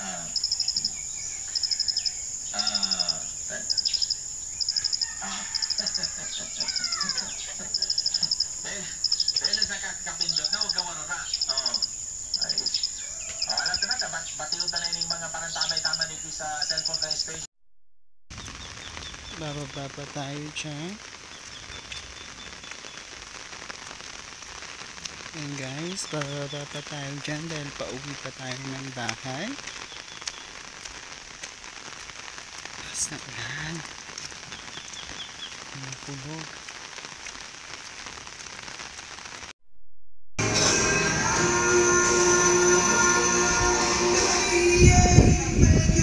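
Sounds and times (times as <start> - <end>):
faint pitched calls: 0.0 - 17.5
insect chirping in rapid pulses: 0.0 - 17.5
steady rain falling: 0.0 - 17.5, 18.3 - 39.5.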